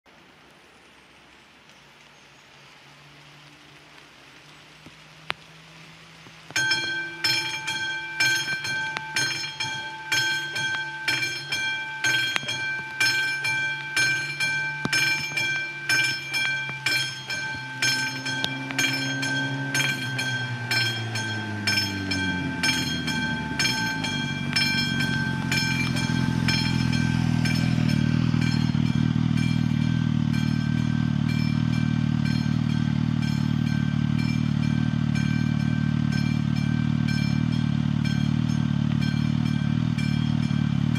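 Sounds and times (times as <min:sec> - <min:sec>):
diesel train engine approaching: 0:00.1 - 0:40.9
outdoor background hiss: 0:00.1 - 0:40.9
level crossing bell ringing: 0:06.6 - 0:40.9.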